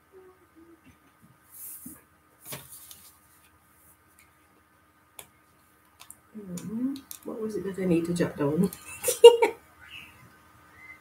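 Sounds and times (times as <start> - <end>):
paper rustle: 1.6 - 3.6.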